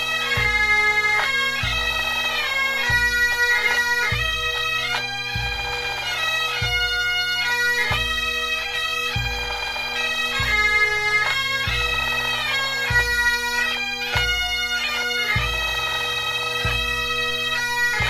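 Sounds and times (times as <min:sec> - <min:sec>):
bagpipes playing: 0:00.0 - 0:18.0
deep drum beat: 0:09.1 - 0:09.6.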